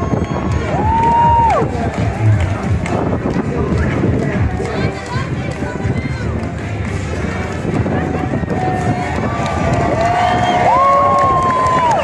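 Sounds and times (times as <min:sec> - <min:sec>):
crowd chattering: 0:00.0 - 0:10.7.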